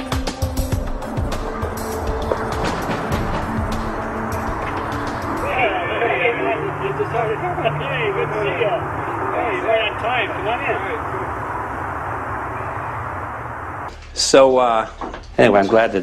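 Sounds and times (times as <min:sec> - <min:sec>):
steady rushing noise: 0:00.6 - 0:13.9
low hum: 0:00.7 - 0:14.3
several voices talking: 0:01.0 - 0:13.4.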